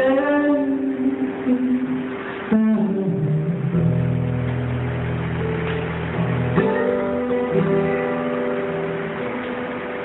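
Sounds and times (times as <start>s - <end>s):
acoustic guitar chord ringing: 0.0s - 10.0s
steady hiss: 0.0s - 10.0s.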